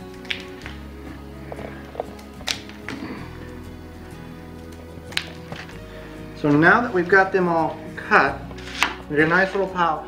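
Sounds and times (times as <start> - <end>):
background music with sustained chords: 0.0 - 10.0.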